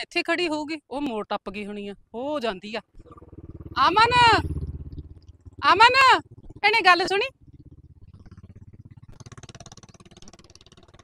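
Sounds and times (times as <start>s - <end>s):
engine running steadily: 2.9s - 11.0s.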